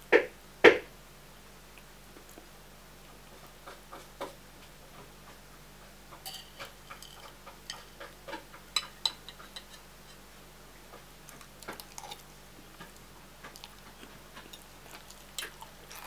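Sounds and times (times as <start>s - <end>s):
cutlery clinking against ceramic bowl: 6.2s - 10.2s.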